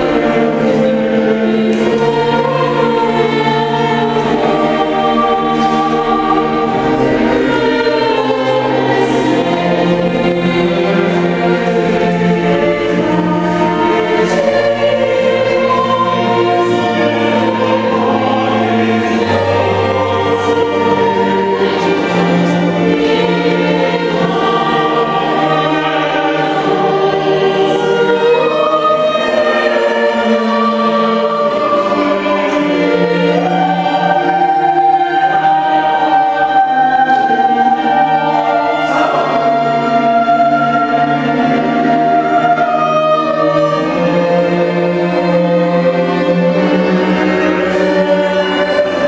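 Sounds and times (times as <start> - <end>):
string ensemble: 0.0 - 49.0
vocal group singing: 0.0 - 49.0.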